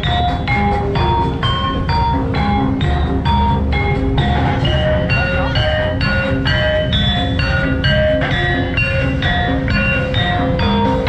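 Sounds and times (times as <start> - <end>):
metal-keyed percussion ringing: 0.0 - 11.0.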